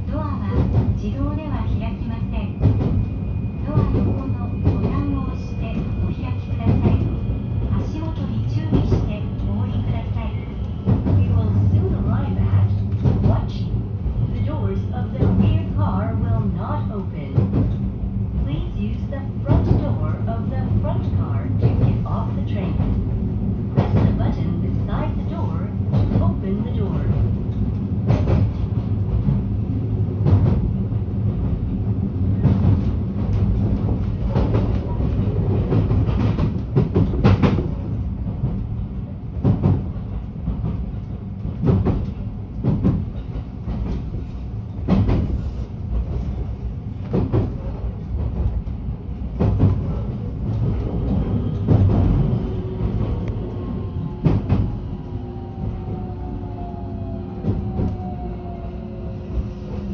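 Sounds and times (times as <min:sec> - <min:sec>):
rail joints clacking: 0:00.0 - 0:58.6
train rumbling on track: 0:00.0 - 0:59.9.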